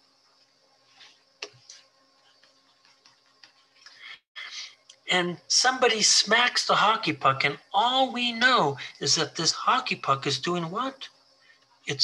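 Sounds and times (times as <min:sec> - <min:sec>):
microphone hiss: 0:00.0 - 0:12.0
soft puffs of noise: 0:00.8 - 0:04.8
faint ticks: 0:01.3 - 0:04.0.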